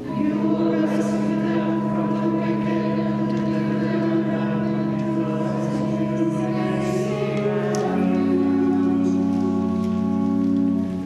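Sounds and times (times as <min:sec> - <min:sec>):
choir singing church music: 0:00.0 - 0:11.0.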